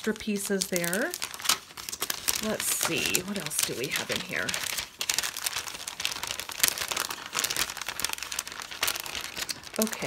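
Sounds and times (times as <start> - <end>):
plastic packet crinkling: 0.0 - 10.0.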